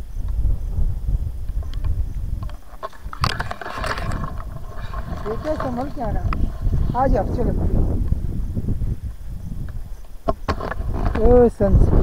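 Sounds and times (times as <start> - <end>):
wind buffeting microphone: 0.0 - 12.0
rustling through tall grass: 1.2 - 12.0.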